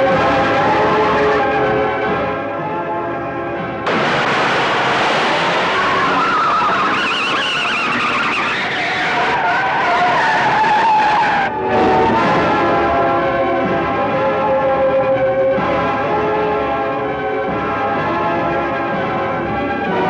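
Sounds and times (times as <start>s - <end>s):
tyres screeching: 3.9s - 11.5s
cars speeding: 3.9s - 12.6s.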